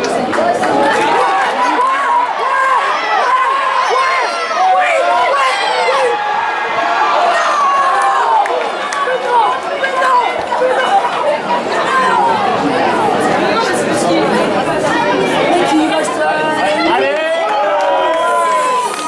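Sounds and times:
players shouting: 0.0s - 19.0s
spectators chatter: 0.0s - 19.0s.

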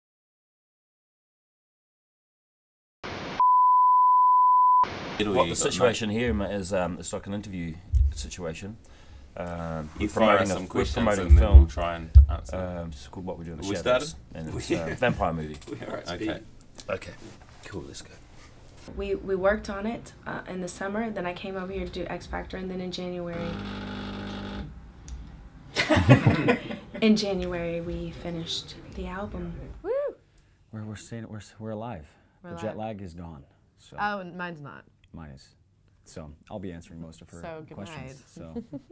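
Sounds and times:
steady test tone beep: 3.4s - 4.9s
woman laughing: 25.8s - 27.1s, 38.4s - 38.9s.

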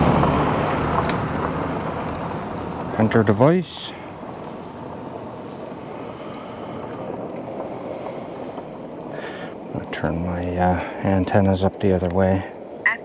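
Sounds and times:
steady rushing noise: 0.0s - 13.0s.

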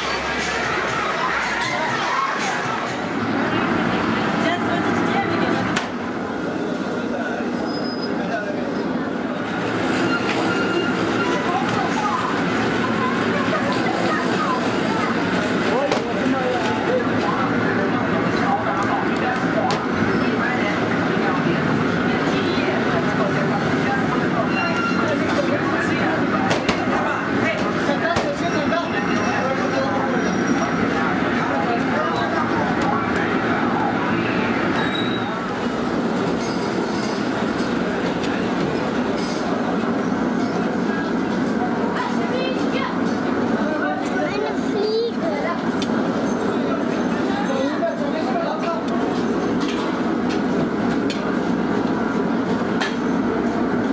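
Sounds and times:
people talking: 0.0s - 53.9s.

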